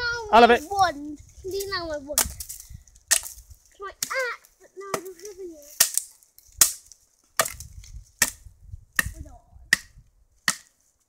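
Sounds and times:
wooden stick striking wood: 2.2 - 3.4, 4.9 - 10.8.

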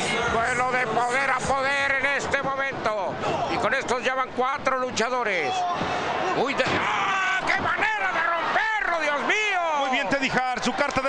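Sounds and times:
man commentating excitedly: 0.0 - 11.0.

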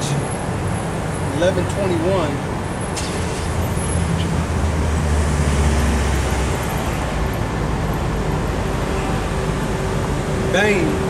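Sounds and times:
passing vehicle engine rumble: 0.0 - 11.0
steady traffic hum: 0.0 - 11.0.

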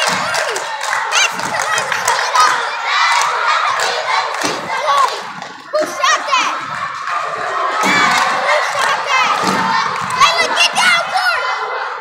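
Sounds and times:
girls shouting and cheering: 0.0 - 12.0.

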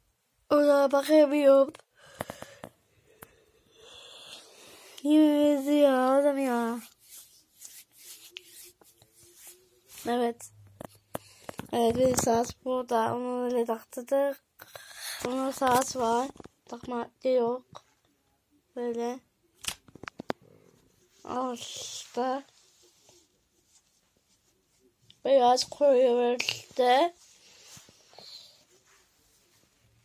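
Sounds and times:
fabric brushing: 5.2 - 10.4, 26.8 - 30.0
hand rubbing over face and hair: 5.2 - 10.4.

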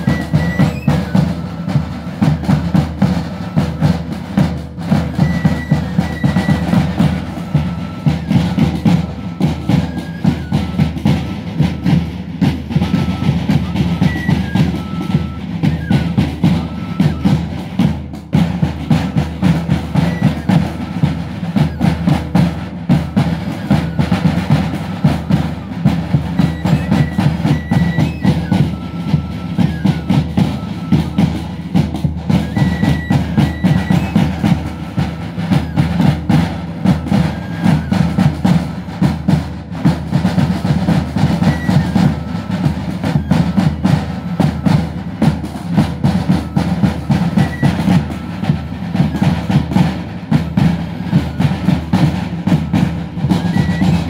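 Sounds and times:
high flute melody: 0.0 - 54.0
snare drum: 0.0 - 54.0.

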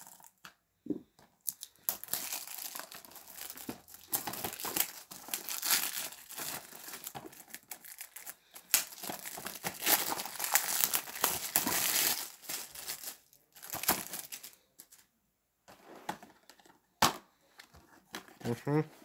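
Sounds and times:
plastic wrap crinkling: 1.4 - 15.0.

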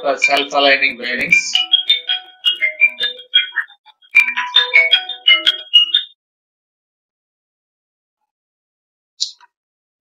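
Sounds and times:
phone ringtone electronic melody: 0.0 - 6.2.

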